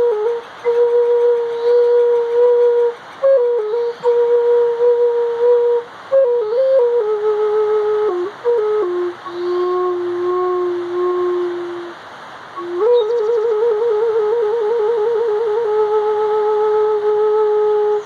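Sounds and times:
flute playing slow melody: 0.0 - 12.0, 12.6 - 18.0.

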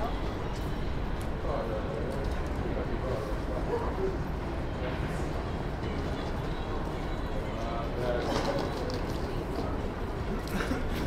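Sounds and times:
low street rumble: 0.0 - 11.0
people's voices passing: 0.0 - 11.0.

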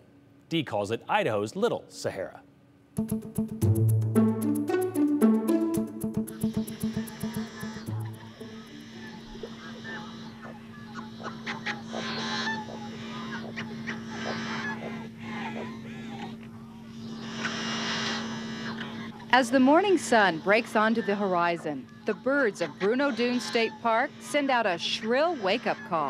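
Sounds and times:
steady low hum: 2.3 - 26.0
wild birds chirping: 8.4 - 26.0.

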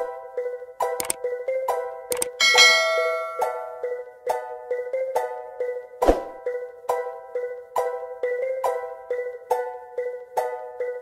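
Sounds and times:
plucked background music: 0.0 - 11.0
bright bell-like ding: 2.4 - 3.7.

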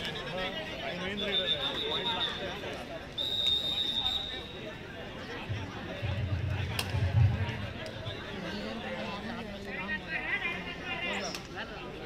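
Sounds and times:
high-pitched whistle blasts: 1.2 - 2.5, 3.2 - 4.7.

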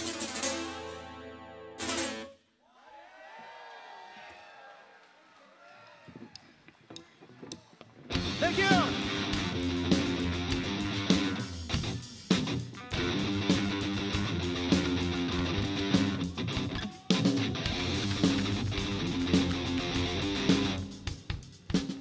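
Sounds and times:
crowd shouting and cheering: 2.6 - 12.2, 14.6 - 20.9
people clapping: 3.4 - 7.9, 17.7 - 20.8
electric guitar bending notes: 8.1 - 21.0
live heavy metal band: 8.1 - 21.2.

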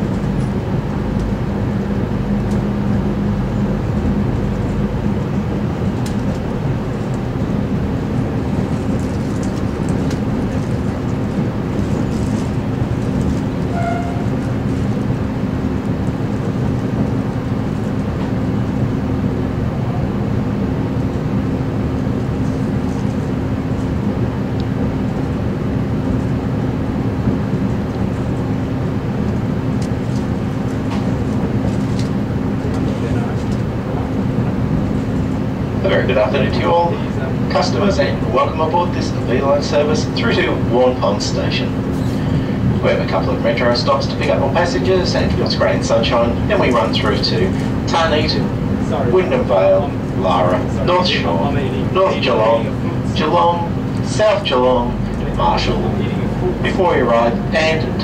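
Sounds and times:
diesel engine hum: 0.0 - 58.0
wheel and rail noise: 0.0 - 58.0.

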